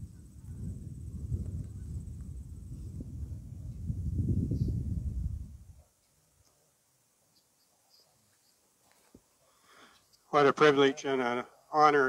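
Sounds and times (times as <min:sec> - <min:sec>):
wind buffeting microphone: 0:00.0 - 0:05.8.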